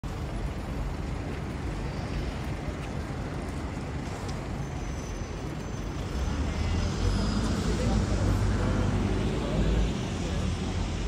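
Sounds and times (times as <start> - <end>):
city background rumble: 0.0 - 11.0.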